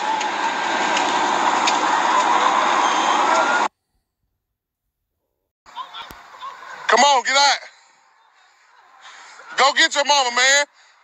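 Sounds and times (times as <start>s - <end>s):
house fire roaring: 0.0s - 3.7s, 6.2s - 11.0s.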